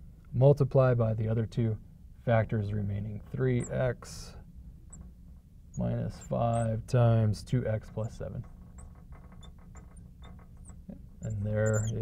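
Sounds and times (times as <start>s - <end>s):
low steady hum: 0.0s - 12.0s
marker squeaking on glass: 3.5s - 3.9s, 4.9s - 6.8s, 7.9s - 12.0s.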